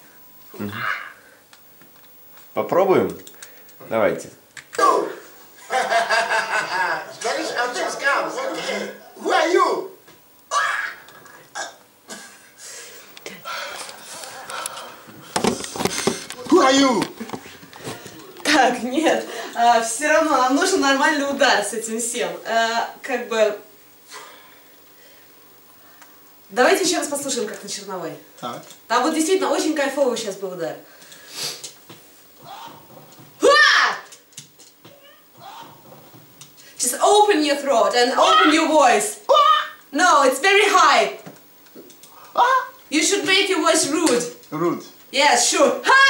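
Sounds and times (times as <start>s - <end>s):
strained grunt-like cry: 32.4s - 32.9s, 35.4s - 35.9s.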